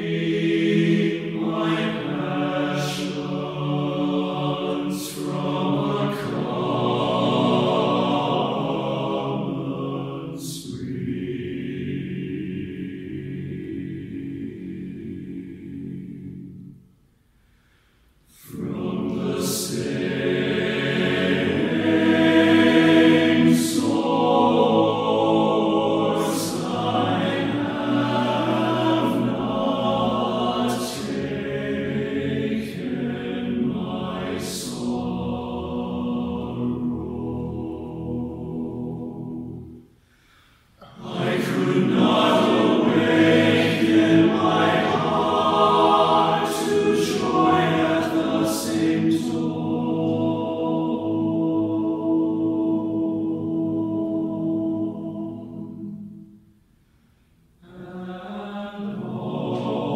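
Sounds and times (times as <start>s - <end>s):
male chorus singing in harmony: 0.0s - 16.8s, 18.3s - 39.9s, 40.8s - 56.4s, 57.6s - 59.9s.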